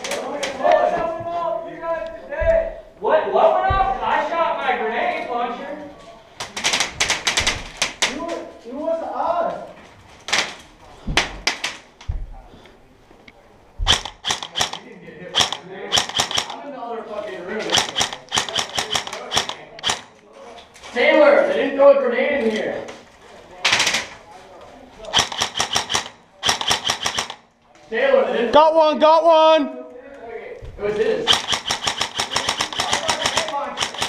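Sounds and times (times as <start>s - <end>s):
voices: 0.0s - 34.0s
paintball markers firing: 13.8s - 16.6s, 17.7s - 20.2s, 25.1s - 27.5s, 31.3s - 34.0s.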